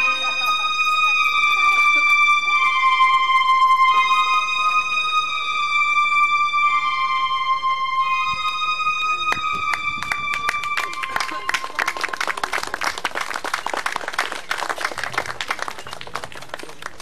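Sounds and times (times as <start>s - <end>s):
audience applause: 9.7s - 17.0s.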